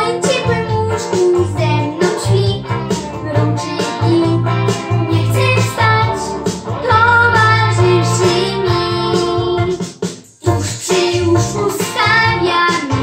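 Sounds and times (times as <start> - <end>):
boy singing: 0.0 - 9.8, 10.4 - 13.0
backing music: 0.0 - 13.0.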